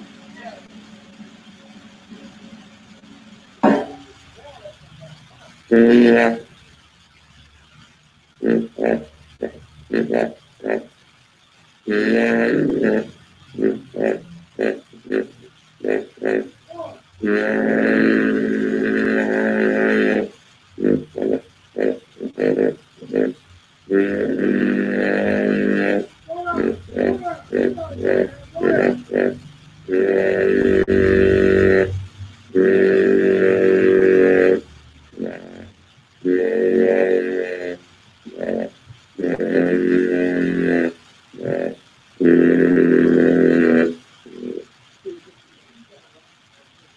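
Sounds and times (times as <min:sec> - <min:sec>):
person chanting held tones: 0:00.0 - 0:06.6, 0:11.9 - 0:46.2.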